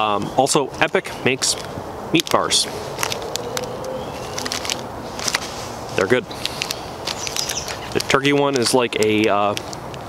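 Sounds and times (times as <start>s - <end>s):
outdoor background hiss: 0.0s - 10.0s
faint clicks and crackles: 3.0s - 5.5s.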